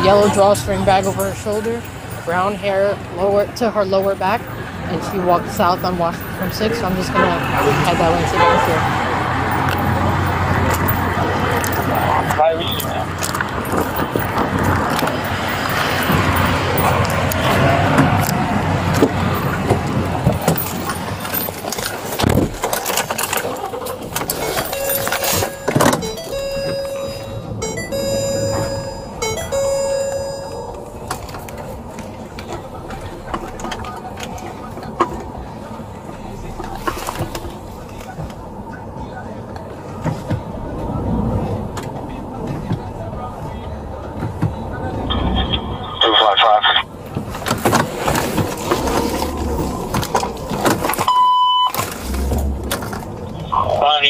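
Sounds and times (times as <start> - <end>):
police radio warbling tone: 23.5 - 31.1, 45.1 - 46.9
electronic chime beeping: 24.3 - 31.0.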